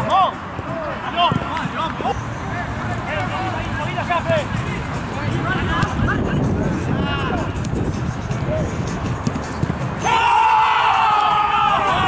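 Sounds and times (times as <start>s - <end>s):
football match noise: 0.0s - 12.0s.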